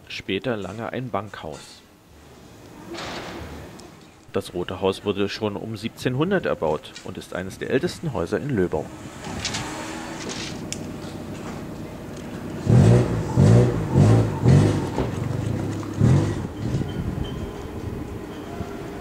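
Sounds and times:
street noise: 0.7 - 19.0
vehicle engine revving: 8.7 - 17.4.

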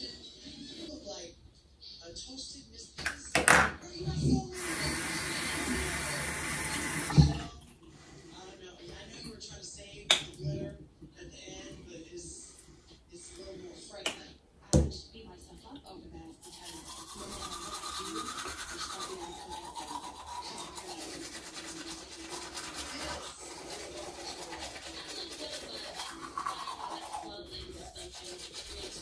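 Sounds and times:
toothbrush scrubbing teeth: 4.1 - 7.2, 16.2 - 29.0.

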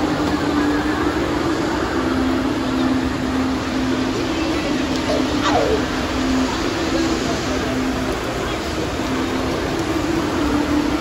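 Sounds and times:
crowd noise: 0.0 - 11.0
low mechanical hum: 0.0 - 11.0.

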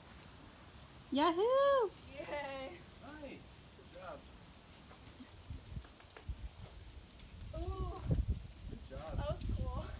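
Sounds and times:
person whooping: 7.5 - 8.2.

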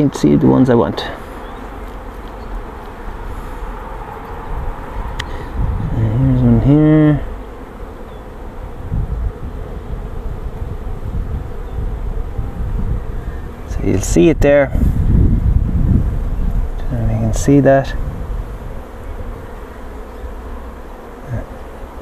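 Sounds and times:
bees buzzing: 0.0 - 22.0
low drone rising in pitch: 1.6 - 7.4.

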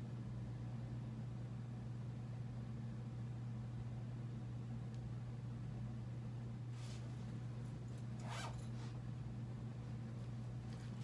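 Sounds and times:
steady low hum: 0.0 - 11.0
clothing zipper rasp: 8.1 - 9.0.

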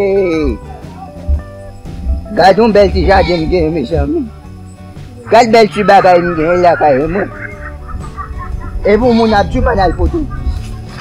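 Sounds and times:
chickens clucking: 5.1 - 11.0
person speaking: 5.2 - 10.4.

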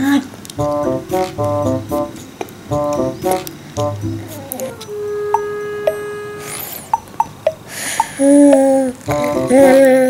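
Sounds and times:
light keyboard tune with bass: 0.6 - 7.6, 9.1 - 9.9.

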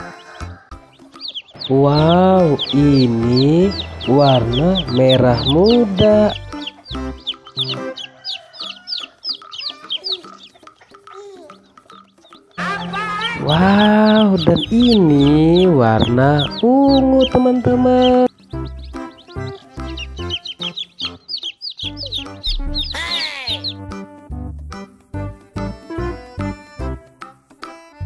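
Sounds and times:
chicks peeping: 0.0 - 24.0
background music: 0.0 - 28.0.

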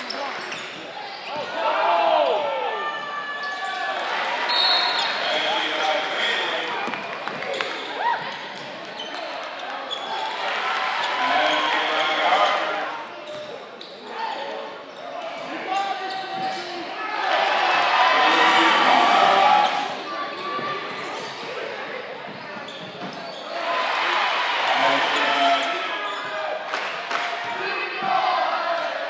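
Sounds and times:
players and spectators talking: 0.0 - 29.0
crowd cheering: 10.0 - 12.7, 17.1 - 20.0, 23.5 - 29.0.

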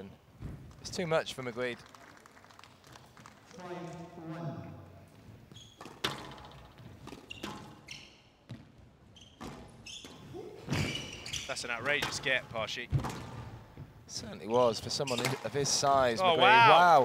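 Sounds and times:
shoe squeaks on wooden floor: 5.4 - 11.9, 14.9 - 15.4
squash ball hitting rackets and walls: 5.8 - 8.7, 9.4 - 13.9.

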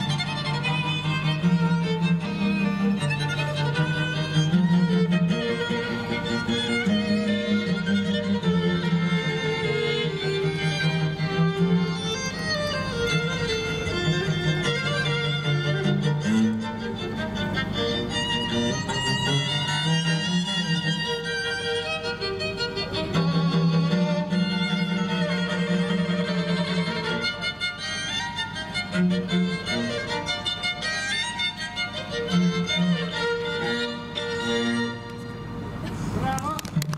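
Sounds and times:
string quartet playing: 0.0 - 36.9.

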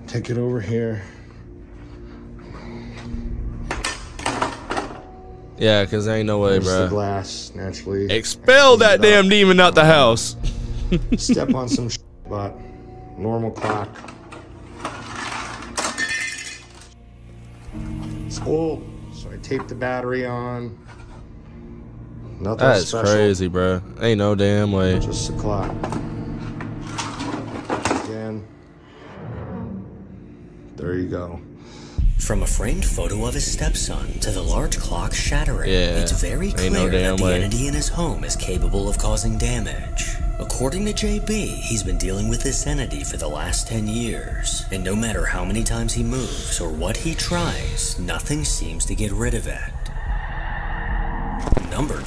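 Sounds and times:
glass shards clinking: 14.6 - 17.0.

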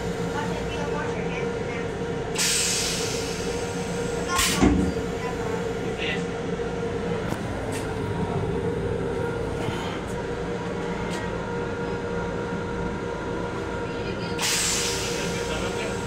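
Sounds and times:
railcar rumbling hiss: 0.0 - 16.0.

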